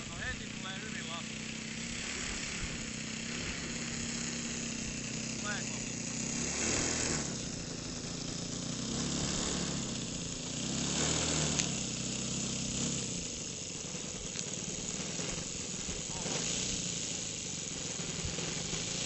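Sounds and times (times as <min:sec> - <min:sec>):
model plane engine droning: 0:00.0 - 0:19.0
steady hiss: 0:00.0 - 0:19.0
small clicks: 0:11.5 - 0:11.8, 0:14.2 - 0:14.6.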